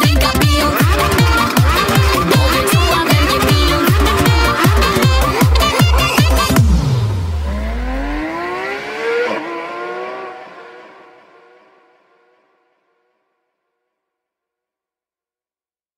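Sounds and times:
car engine revving: 0.0s - 13.1s
deep bass note: 0.2s - 8.7s.

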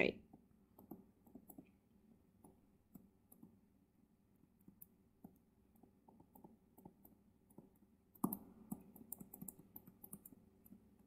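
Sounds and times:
stylus tapping on tablet screen: 0.3s - 3.7s, 4.6s - 11.0s.

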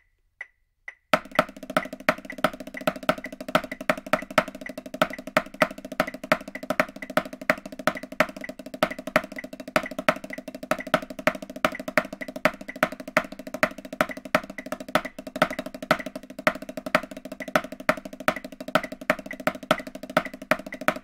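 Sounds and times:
metronome clicking: 0.0s - 21.0s
snare drum played fast: 1.2s - 21.0s.

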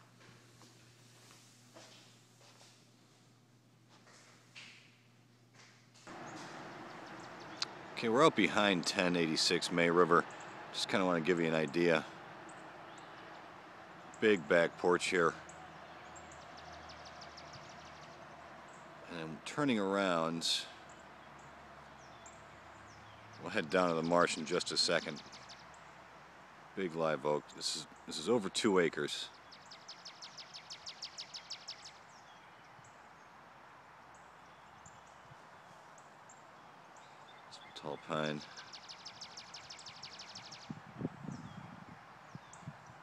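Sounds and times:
bird trilling: 6.1s - 19.2s.

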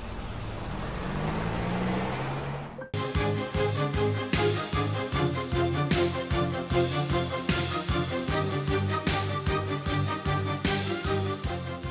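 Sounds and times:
car engine hum: 0.0s - 2.9s
road noise: 0.0s - 10.9s.

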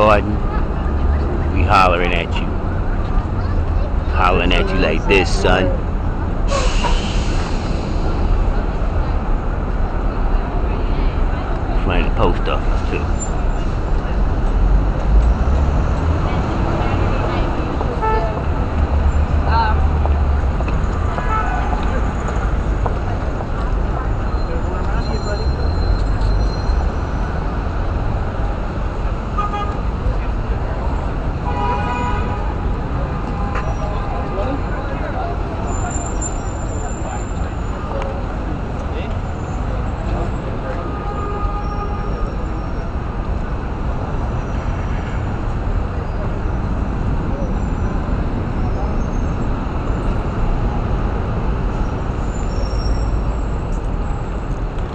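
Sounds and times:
passing vehicles rumble: 0.0s - 54.9s
vehicle horn: 18.0s - 18.4s, 29.4s - 29.8s, 31.4s - 32.6s, 40.8s - 42.5s.

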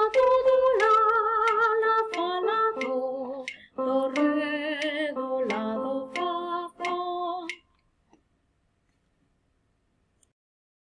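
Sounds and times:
woman singing unaccompanied: 0.0s - 7.8s.

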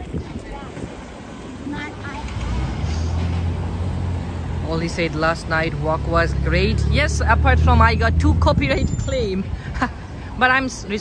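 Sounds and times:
street traffic noise: 0.0s - 11.0s
vehicle engine running: 2.1s - 9.0s.

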